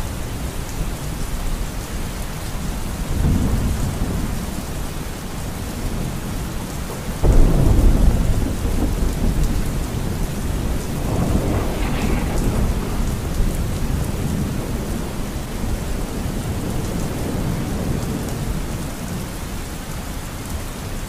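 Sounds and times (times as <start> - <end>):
heavy rain: 0.0 - 21.0
thunder rumbling: 0.3 - 19.8
loud thunderclap: 6.9 - 18.8.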